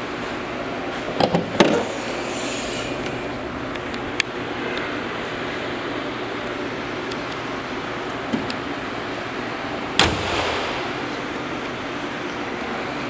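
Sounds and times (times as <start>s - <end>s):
car engine idling: 1.9s - 12.8s
car hood slamming shut: 10.0s - 11.0s.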